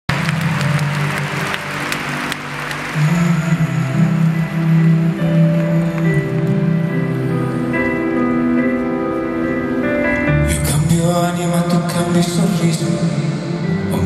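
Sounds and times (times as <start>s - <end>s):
crowd applauding and cheering: 0.1s - 7.3s
soft sustained instrumental chords: 0.1s - 14.0s.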